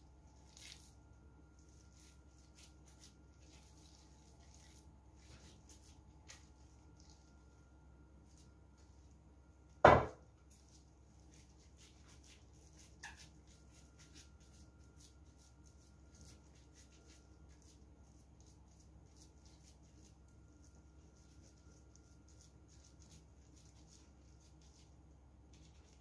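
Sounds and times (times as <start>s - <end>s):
faint steady low hum: 0.0s - 26.0s
squishing of meat mixture: 0.0s - 26.0s.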